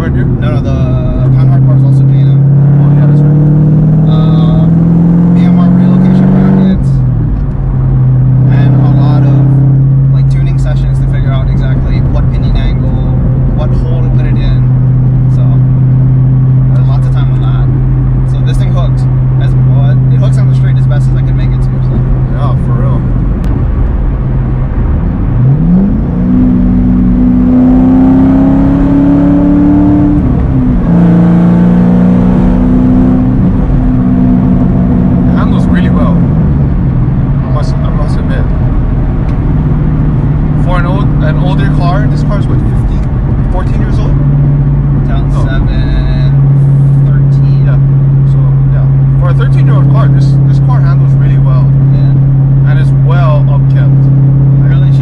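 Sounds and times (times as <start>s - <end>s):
car engine accelerating: 0.0s - 55.0s.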